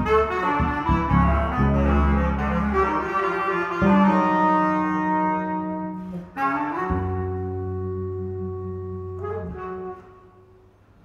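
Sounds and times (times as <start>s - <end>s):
electric bass low note: 0.0s - 3.0s, 6.9s - 10.1s
bass clarinet long notes: 0.0s - 10.7s.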